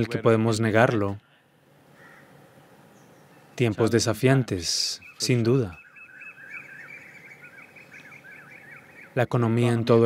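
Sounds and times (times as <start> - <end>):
small birds chirping: 1.2 - 10.0.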